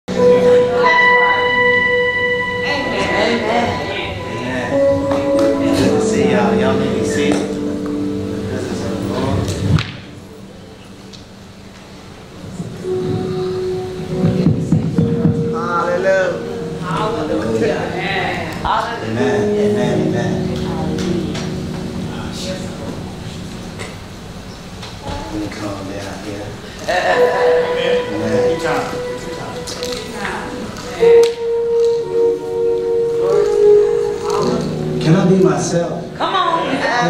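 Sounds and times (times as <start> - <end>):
keyboard playing held notes: 0.1 - 25.3, 26.7 - 37.0
man's voice: 2.9 - 7.7, 15.0 - 20.5, 33.3 - 37.0.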